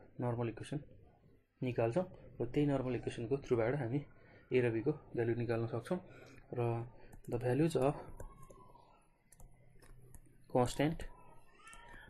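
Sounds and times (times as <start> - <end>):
stylus tapping on tablet screen: 7.1 - 10.4.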